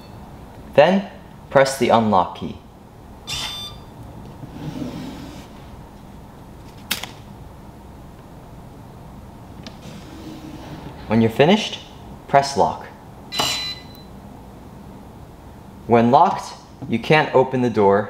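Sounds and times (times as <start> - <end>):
keypad beep: 3.3 - 4.0, 13.3 - 14.1.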